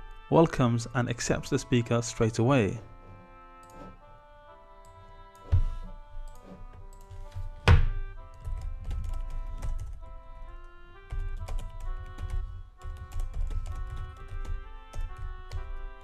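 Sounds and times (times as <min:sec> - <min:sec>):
instrumental background music: 0:00.0 - 0:16.0
loud thump: 0:05.5 - 0:05.9, 0:07.6 - 0:08.1
computer keyboard typing: 0:08.3 - 0:16.0.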